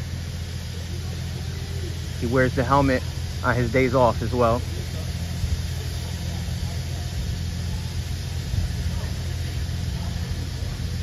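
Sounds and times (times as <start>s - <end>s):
faint street noise: 0.0s - 11.0s
vehicle engine idling: 0.0s - 11.0s.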